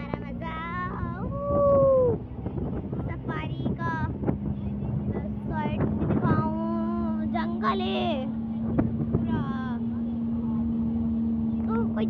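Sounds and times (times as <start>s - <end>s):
vehicle engine hum: 0.0s - 12.0s.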